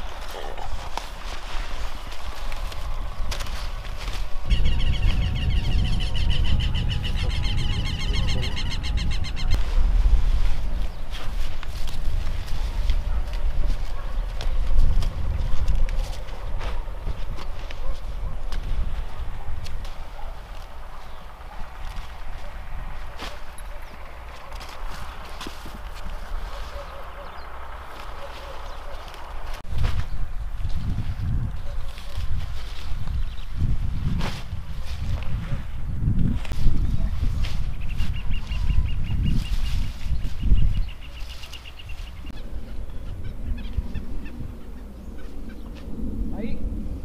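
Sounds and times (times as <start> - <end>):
lettuce snapping and rustling: 0.1 - 4.4, 11.2 - 17.8
bird trilling: 4.4 - 9.6
low rumble: 42.2 - 47.0.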